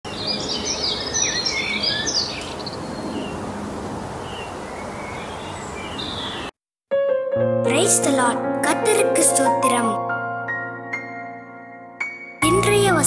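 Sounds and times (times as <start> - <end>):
birds chirping: 0.0 - 6.5
steady outdoor hiss: 0.1 - 6.5.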